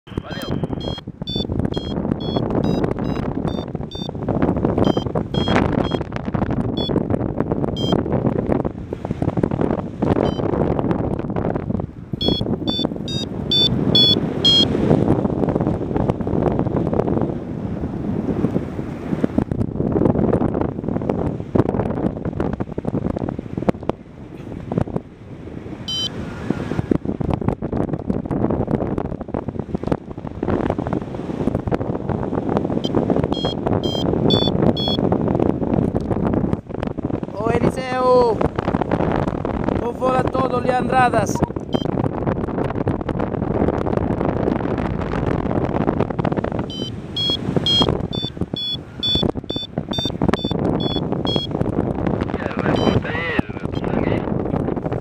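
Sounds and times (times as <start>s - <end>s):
wind rushing over microphone: 0.0s - 55.0s
variometer short high beeps: 0.4s - 4.1s, 4.8s - 6.1s, 6.8s - 7.0s, 7.8s - 8.0s, 10.2s - 10.5s, 12.2s - 14.8s, 25.9s - 26.2s, 32.8s - 35.0s, 41.3s - 41.9s, 46.7s - 51.5s, 52.7s - 53.0s, 53.7s - 53.9s.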